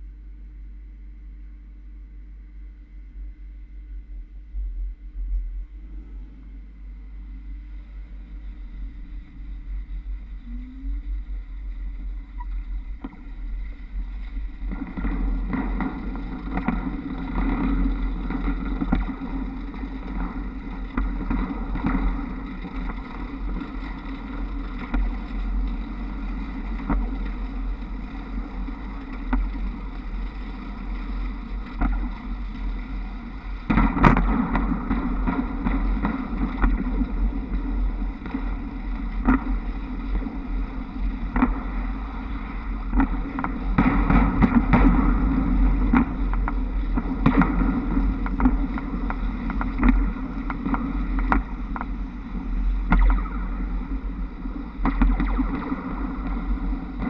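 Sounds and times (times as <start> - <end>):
wind rumble on microphone: 0.0 - 57.0.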